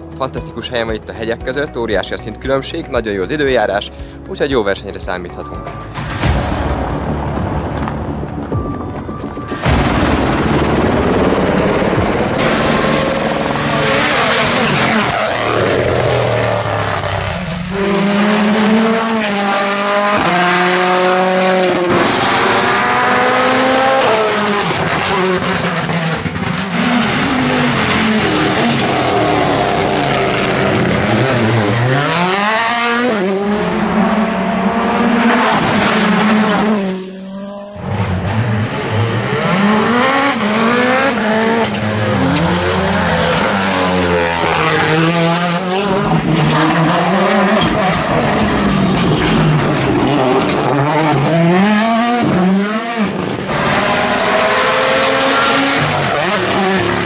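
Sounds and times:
car braking and downshifting: 0:06.9 - 0:57.0
rally car engines revving: 0:09.2 - 0:57.0.

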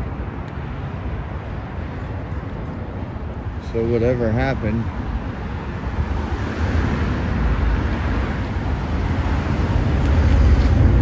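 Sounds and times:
low rumble of road traffic: 0:00.0 - 0:11.0.

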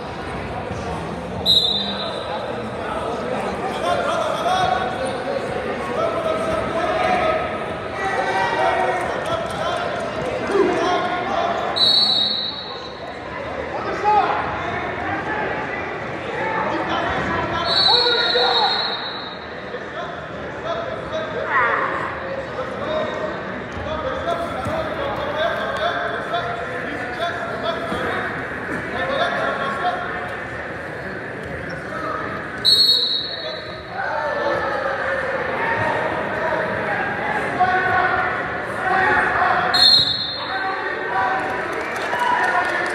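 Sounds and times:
voices echoing in a gym: 0:00.0 - 0:42.9
referee's whistle blasts: 0:01.4 - 0:02.2, 0:11.8 - 0:13.0, 0:17.6 - 0:19.5, 0:32.6 - 0:33.8, 0:39.7 - 0:40.5.

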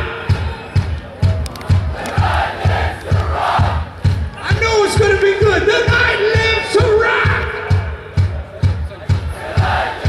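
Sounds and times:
drum beat: 0:00.0 - 0:10.0
audience shouting along: 0:01.9 - 0:06.2.

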